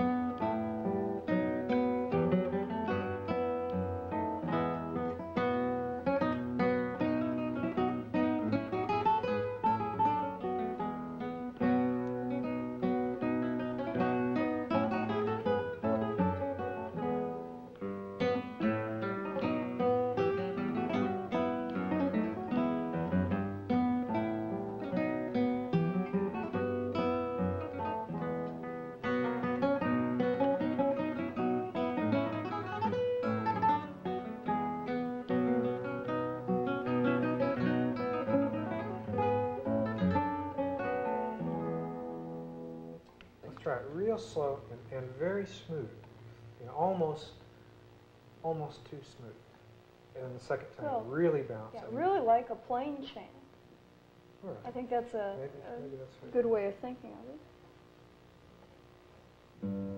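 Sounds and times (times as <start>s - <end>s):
fingerstyle classical guitar: 0.0s - 45.9s, 59.6s - 59.9s.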